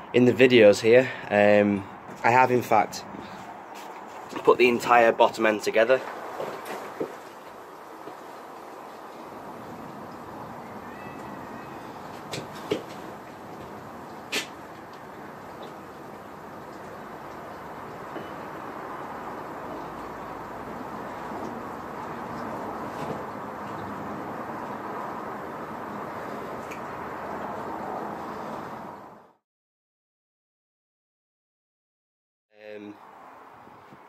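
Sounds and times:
outdoor background hiss: 0.0 - 29.4.

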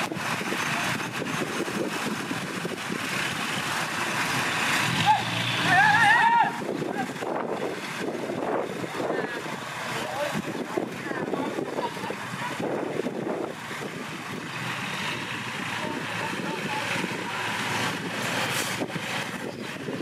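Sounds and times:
bulldozer diesel engine running: 0.0 - 20.0
men talking: 8.8 - 12.7.

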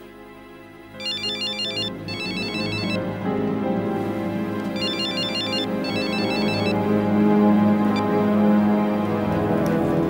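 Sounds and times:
background music: 0.0 - 10.0
electronic phone ringtone melody: 1.0 - 3.0, 4.8 - 6.8.

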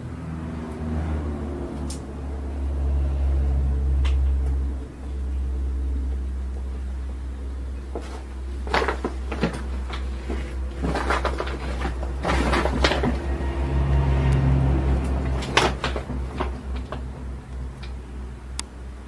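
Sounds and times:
steady low hum: 0.0 - 19.0
knocks and clatter of handling things: 7.9 - 13.4, 15.0 - 17.2.

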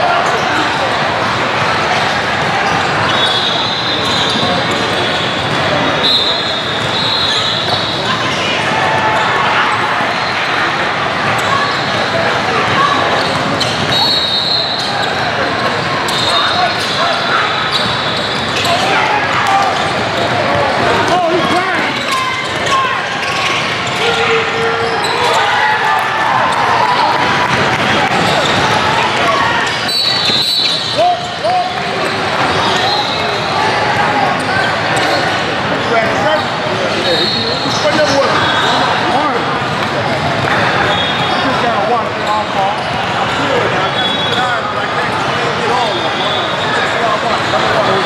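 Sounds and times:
babble of voices: 0.0 - 48.0
high shoe squeaks: 2.5 - 8.3, 12.8 - 15.3, 16.0 - 19.1, 29.6 - 33.5, 34.5 - 39.4.

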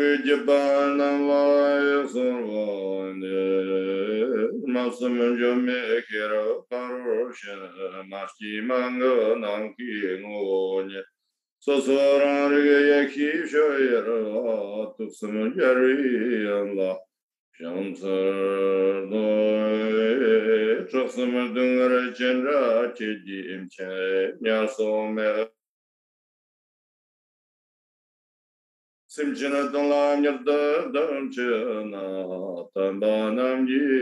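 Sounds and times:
man chanting a prayer: 0.0 - 11.0, 11.6 - 25.6, 29.1 - 34.0.

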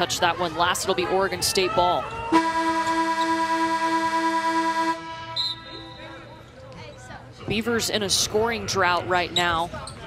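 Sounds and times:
arena horn blast: 2.4 - 5.8.

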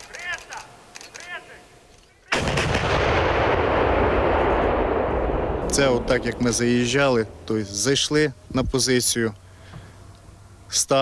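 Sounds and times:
howitzers firing blast: 2.3 - 8.2
sustained rumble: 3.6 - 8.8.

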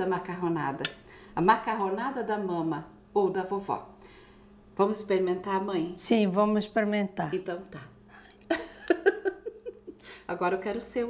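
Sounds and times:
woman giggling: 8.5 - 10.1.

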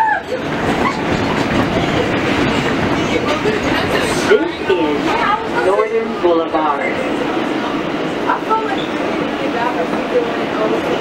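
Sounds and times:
subway wheels on rail: 0.0 - 11.0.

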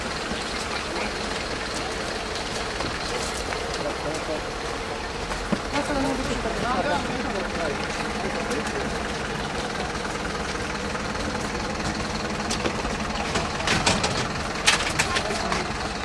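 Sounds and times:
faint voices: 0.0 - 16.0
vehicle engine idling: 0.0 - 16.0.

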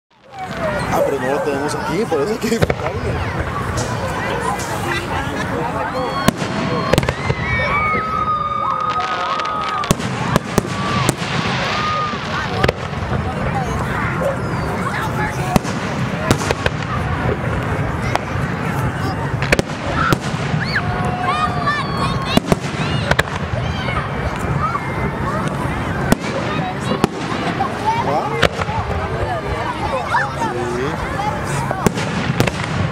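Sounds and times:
spectators chatting: 0.1 - 32.9
fireworks bangs: 0.2 - 30.0, 31.0 - 32.9.

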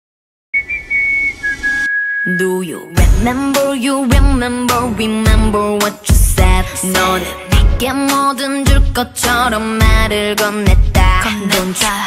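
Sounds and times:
whistled melody: 0.6 - 2.9.

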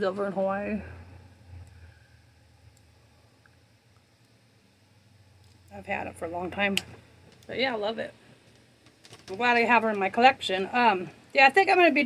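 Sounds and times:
faint low rumble: 0.0 - 11.8.

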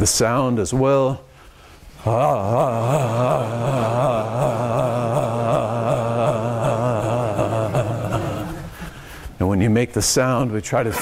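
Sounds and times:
man's wobbling ah vocalisation: 2.0 - 8.8.

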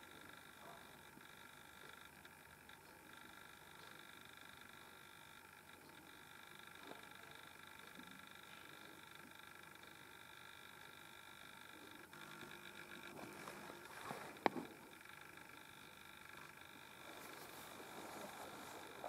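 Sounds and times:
faint high electronic whine: 0.0 - 19.0.

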